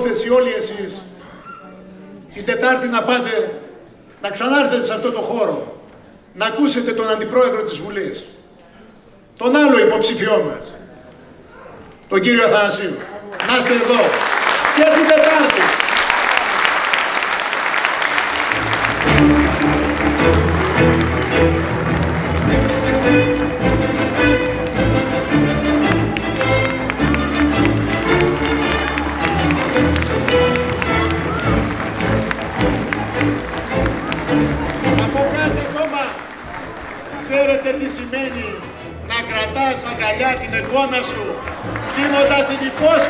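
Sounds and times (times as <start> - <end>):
audience applauding: 13.0 - 43.0.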